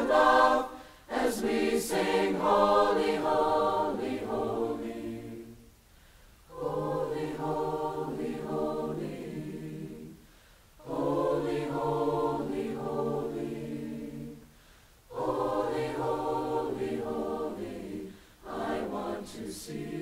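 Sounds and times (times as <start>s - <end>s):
mixed choir singing held chords: 0.0s - 5.7s, 6.5s - 20.0s.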